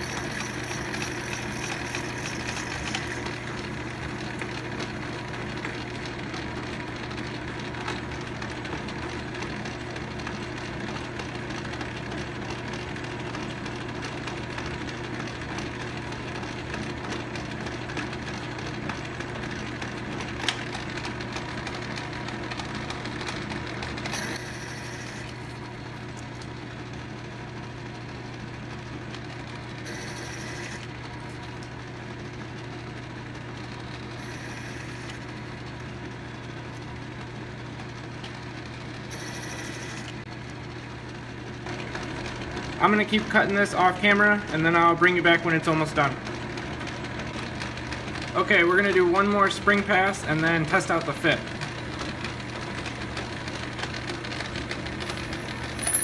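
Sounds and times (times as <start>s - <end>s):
metal lathe running: 0.0s - 26.0s, 26.8s - 40.3s, 41.4s - 56.0s.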